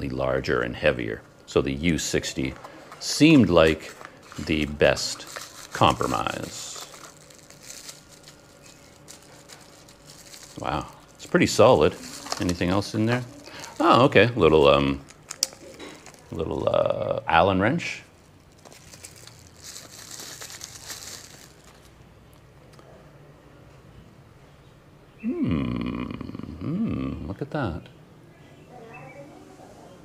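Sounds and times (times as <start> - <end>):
plastic bag crinkling: 2.3 - 17.1, 18.1 - 22.1.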